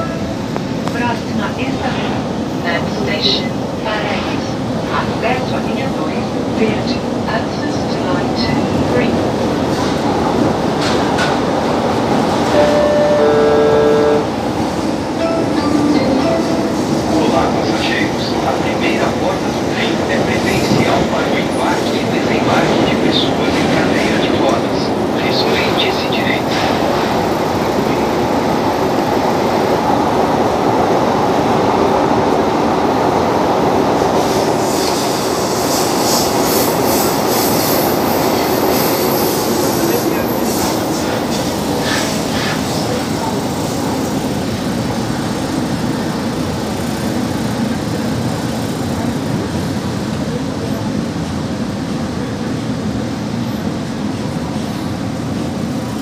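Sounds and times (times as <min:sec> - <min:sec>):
train wheels rumbling on rail: 0:00.0 - 0:56.0
short electronic tones: 0:12.6 - 0:14.3.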